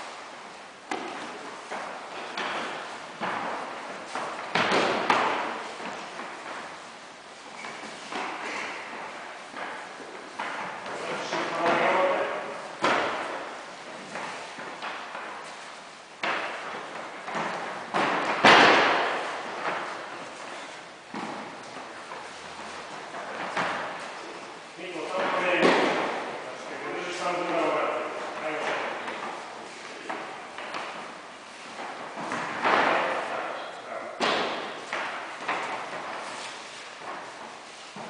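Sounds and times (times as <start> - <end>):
bodies thudding on foam mats: 0.8 - 24.6, 27.4 - 33.3, 34.2 - 38.0.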